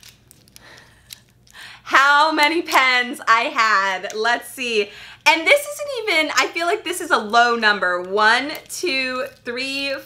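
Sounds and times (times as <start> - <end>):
plastic pens clicking: 0.0 - 1.6, 7.2 - 10.0.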